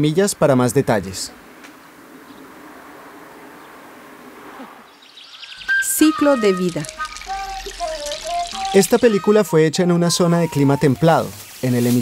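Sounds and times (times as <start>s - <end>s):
garden ambience hiss: 4.9s - 12.0s
music with held high note: 5.9s - 11.4s.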